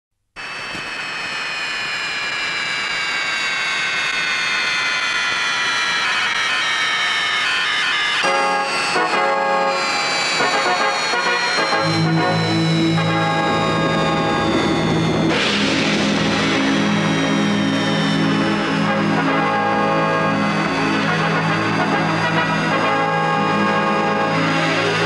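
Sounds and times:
jet engine drone and whine: 0:00.4 - 0:25.0
held orchestral chords: 0:08.2 - 0:25.0.

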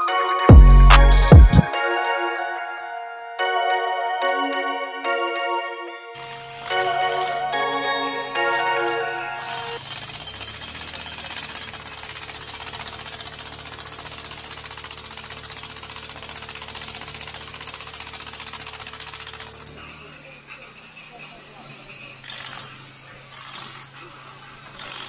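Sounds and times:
jackhammer breaking concrete: 0:06.2 - 0:07.6, 0:08.5 - 0:25.0.

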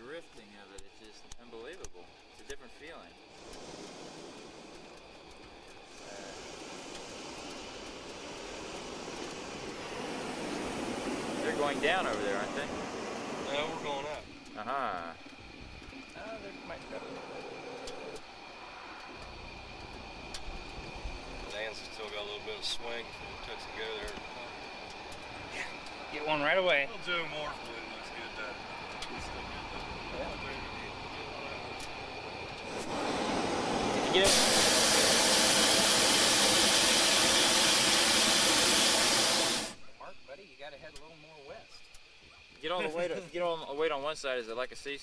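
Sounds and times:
propane burner roaring: 0:00.0 - 0:45.0
faint voices: 0:09.6 - 0:19.3, 0:20.6 - 0:33.0.

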